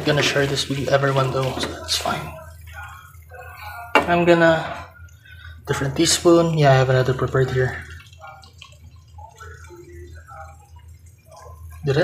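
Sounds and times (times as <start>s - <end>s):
low steady hum: 0.0s - 12.0s
sauce bubbling in a frying pan: 0.0s - 12.0s.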